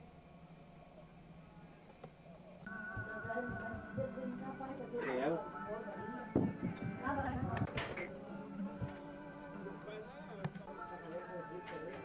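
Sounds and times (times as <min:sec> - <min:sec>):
background music: 0:02.7 - 0:12.0
indistinct voices talking: 0:02.7 - 0:12.0.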